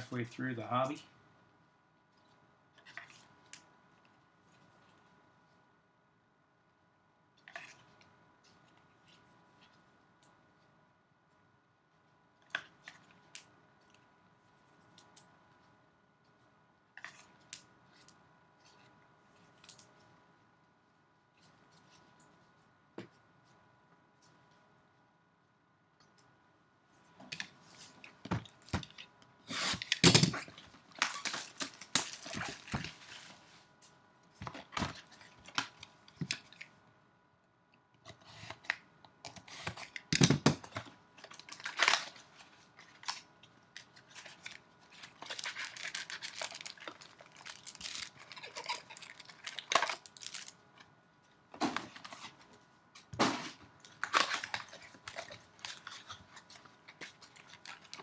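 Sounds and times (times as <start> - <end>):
wrappers ripping and crinkling: 29.5 - 33.4, 41.2 - 50.6, 53.9 - 58.0.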